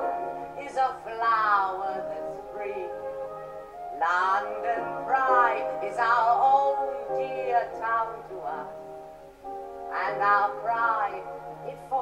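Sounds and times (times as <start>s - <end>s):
woman singing with vibrato: 0.0s - 9.0s, 9.9s - 12.0s
instrumental accompaniment: 0.0s - 12.0s.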